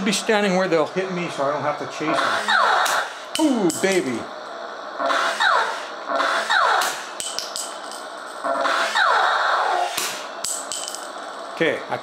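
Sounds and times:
toy rockets launching: 0:05.1 - 0:07.6, 0:08.6 - 0:10.3.

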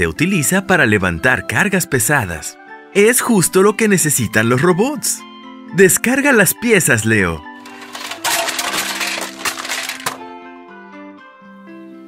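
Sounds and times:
soft background music: 0:00.0 - 0:12.0
clatter of many small impacts: 0:07.6 - 0:10.2.

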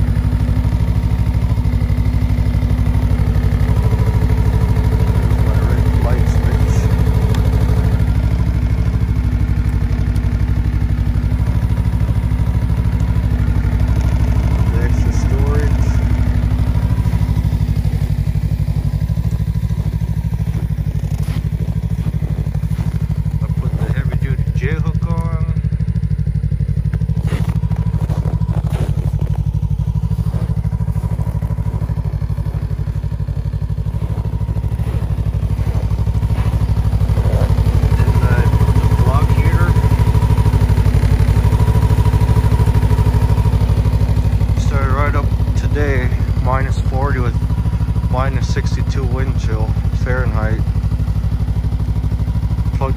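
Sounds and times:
snowmobile engine idling: 0:00.0 - 0:52.9.

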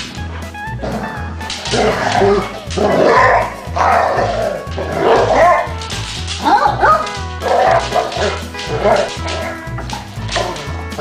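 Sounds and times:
background music with bass line: 0:00.0 - 0:11.0
dogs yipping and barking: 0:00.8 - 0:11.0.

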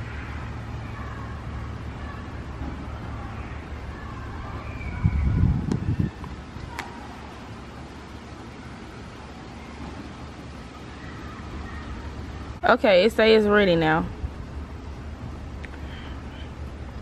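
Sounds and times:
low outdoor rumble: 0:00.0 - 0:17.0
faint sharp clicks: 0:15.6 - 0:15.9.

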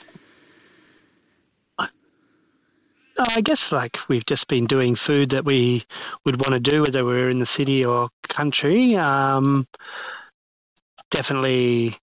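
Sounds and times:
sharp vocal catch of breath: 0:09.8 - 0:10.3.

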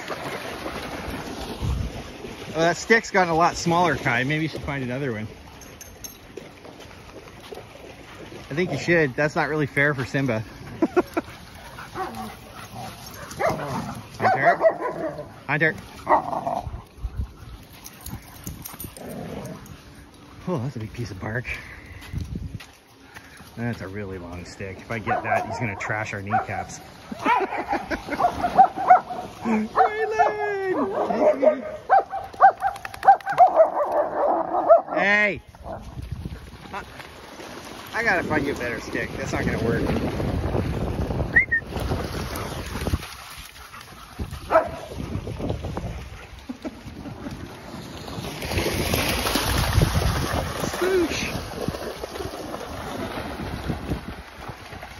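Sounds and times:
dogs splashing through water: 0:00.0 - 0:54.9
wind buffeting microphone: 0:01.4 - 0:02.6, 0:16.3 - 0:19.2, 0:35.5 - 0:36.8, 0:38.1 - 0:43.2, 0:43.9 - 0:47.6, 0:48.2 - 0:54.9
dog growling: 0:16.1 - 0:16.8, 0:19.0 - 0:19.7.

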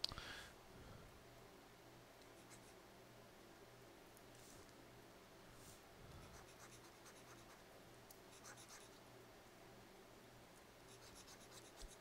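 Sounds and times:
low steady hum: 0:00.0 - 0:12.0
faint scratching: 0:04.3 - 0:04.8, 0:05.5 - 0:07.6, 0:08.3 - 0:09.0, 0:10.8 - 0:12.0.

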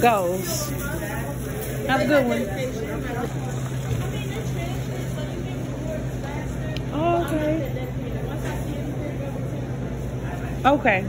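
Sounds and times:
faint voices: 0:00.0 - 0:11.0
low machine hum: 0:00.0 - 0:11.0.

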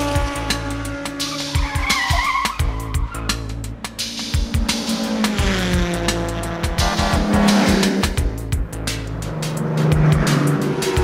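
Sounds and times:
pulsing synth bass: 0:02.6 - 0:11.0.

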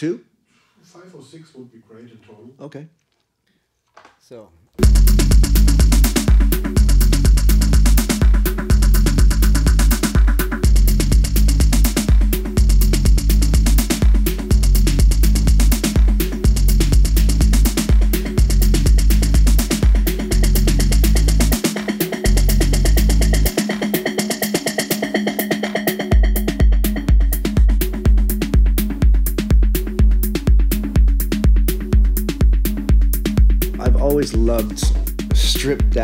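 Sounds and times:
minimal techno beat: 0:04.8 - 0:36.0.

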